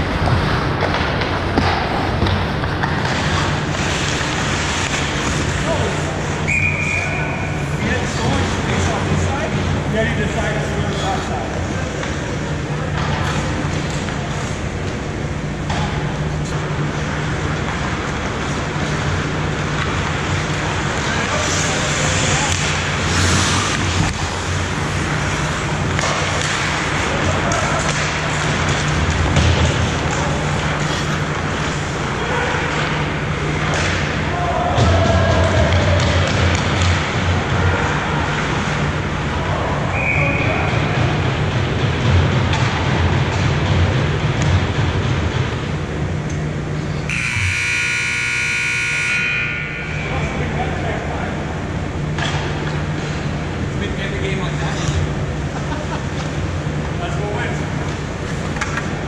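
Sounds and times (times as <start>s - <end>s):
skates on ice: 0.0s - 9.5s, 16.4s - 33.0s
steady low hum: 0.0s - 59.0s
stick and puck noise: 0.0s - 59.0s
scoreboard horn: 47.1s - 50.2s.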